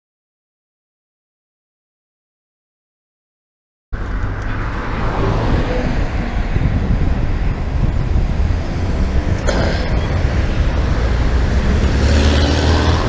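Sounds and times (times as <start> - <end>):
low wind rumble on microphone: 4.0 - 13.0
street traffic noise: 4.0 - 13.0.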